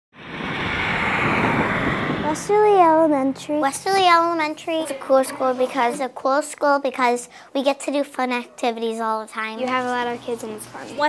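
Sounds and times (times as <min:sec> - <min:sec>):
car tyres rushing on asphalt: 0:00.2 - 0:03.1.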